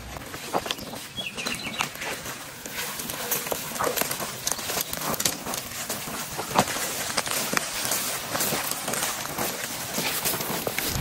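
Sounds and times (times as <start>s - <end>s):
footsteps through tall grass: 0.0s - 11.0s
leaves swishing and crackling: 0.0s - 11.0s.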